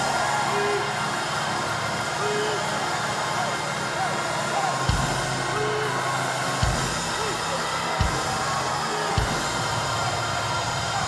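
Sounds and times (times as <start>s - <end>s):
band playing sustained low chords: 0.0s - 11.0s
congregation shouting and crying out: 0.0s - 11.0s
drum hits: 4.9s - 5.7s, 6.6s - 10.0s.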